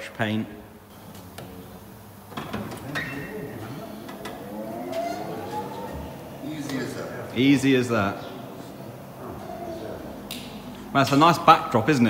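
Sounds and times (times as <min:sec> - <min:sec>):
wheel balancing machine whine: 0:00.9 - 0:12.0.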